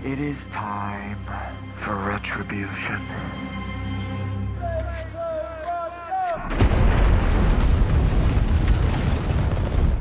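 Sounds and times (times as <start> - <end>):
fireball blast and rumble: 6.5 - 10.0.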